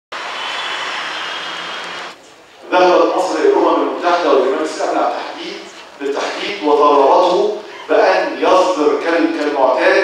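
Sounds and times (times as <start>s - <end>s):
street traffic rushing: 0.1s - 2.2s.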